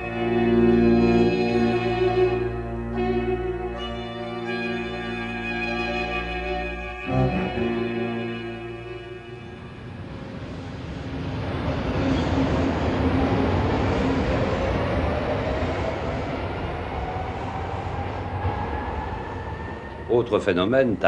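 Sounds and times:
metro train rumble: 0.0 - 21.0.

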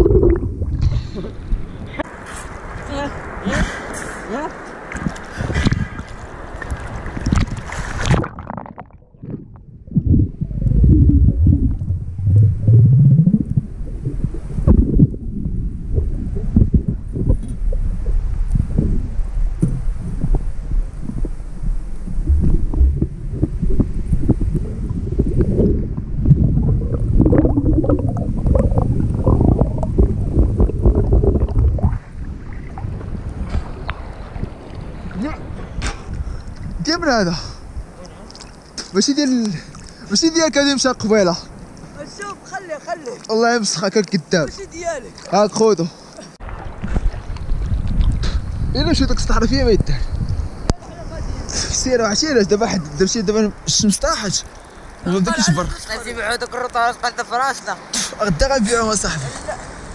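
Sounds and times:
underwater rumble of water: 0.0 - 2.0, 4.9 - 38.0, 46.4 - 51.5
splash: 3.4 - 9.4.

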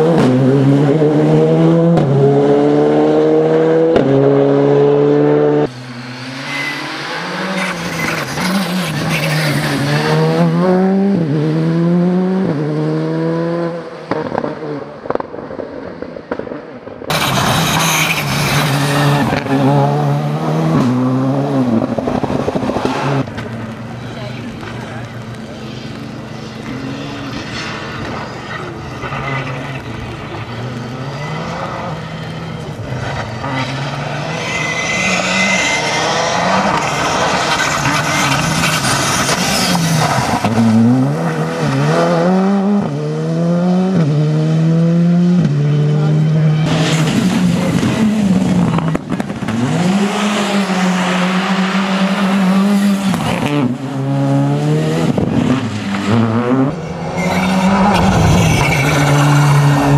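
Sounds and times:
rally car engine revving: 0.0 - 15.4, 17.1 - 59.9.

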